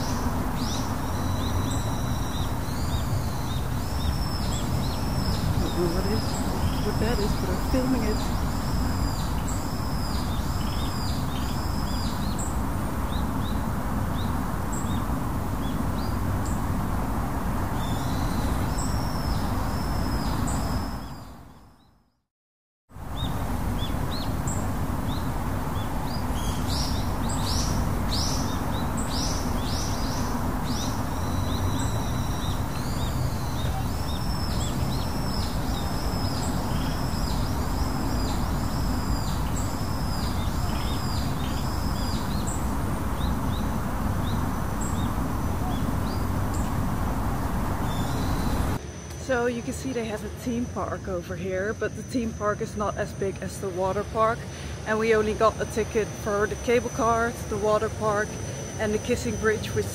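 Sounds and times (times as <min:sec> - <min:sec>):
birds chirping: 0:00.0 - 0:21.9, 0:23.1 - 0:59.9
outdoor background noise: 0:00.0 - 0:22.2, 0:22.9 - 0:59.9.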